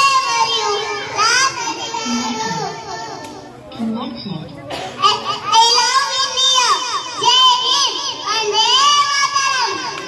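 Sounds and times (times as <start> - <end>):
girl singing over loudspeaker: 0.0 - 3.2.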